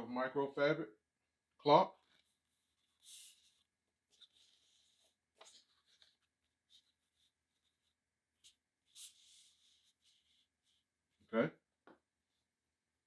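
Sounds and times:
hands brushing a cloth: 2.2 - 10.9.

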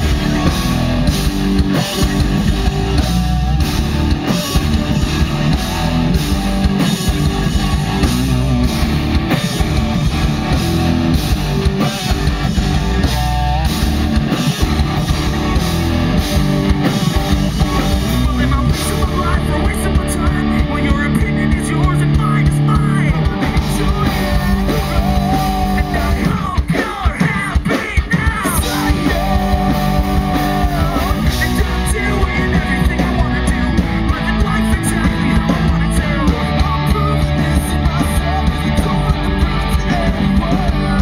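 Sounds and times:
bass guitar: 0.0 - 41.0
distorted electric guitars: 0.0 - 41.0
drum kit fast beat: 0.0 - 41.0.

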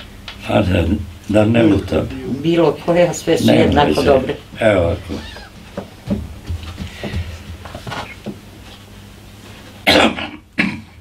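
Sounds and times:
man coughing: 9.9 - 11.0.

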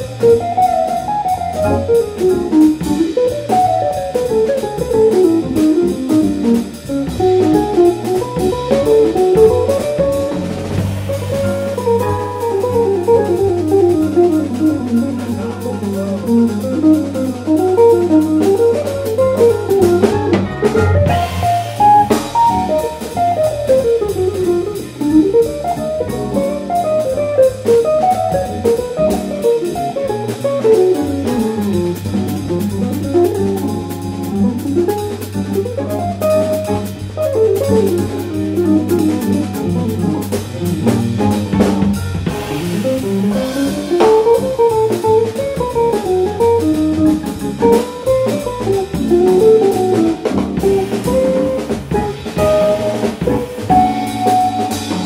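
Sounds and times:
drum kit: 0.0 - 55.0
low bass notes: 0.0 - 55.0.

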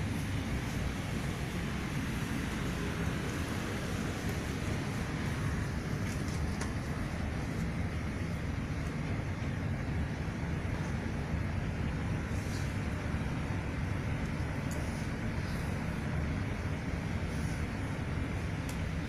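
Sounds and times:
low rumbling background noise: 0.0 - 19.0.

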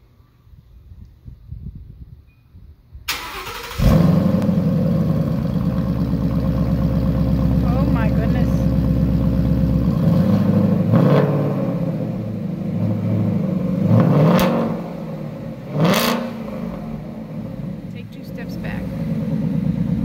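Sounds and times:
car engine idling: 3.2 - 14.0, 14.7 - 20.0
car engine revving: 3.2 - 20.0.

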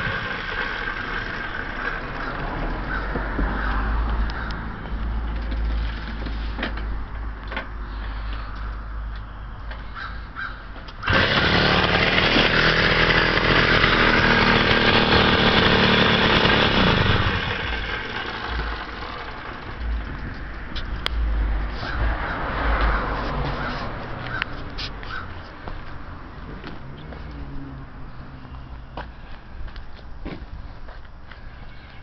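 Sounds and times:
moped two-stroke engine: 0.0 - 3.2, 11.0 - 20.6.

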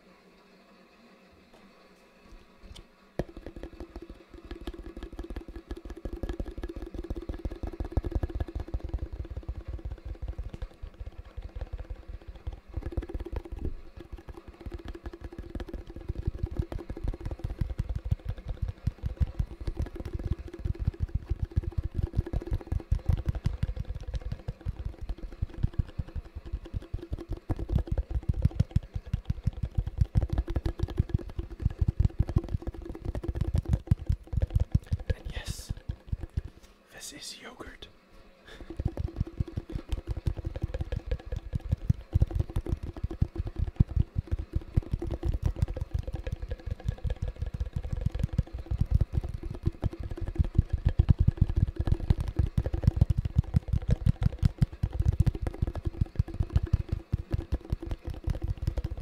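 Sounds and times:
fingertips tapping on plastic tub: 3.2 - 36.7, 38.5 - 59.0.

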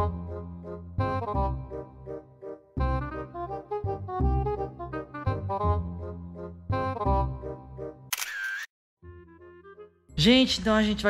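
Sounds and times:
camera shutter sound effect: 8.1 - 8.7
quiet background music: 9.1 - 11.0.

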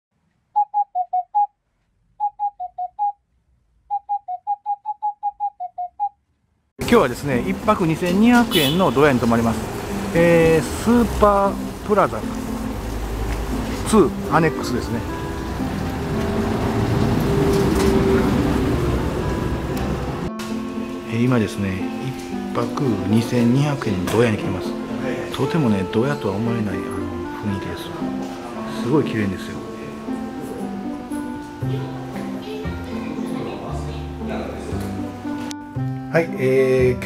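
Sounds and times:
whistle-like jingle notes: 0.6 - 1.5, 2.2 - 3.2, 3.9 - 6.2
vehicle engine rumble: 15.0 - 20.3.

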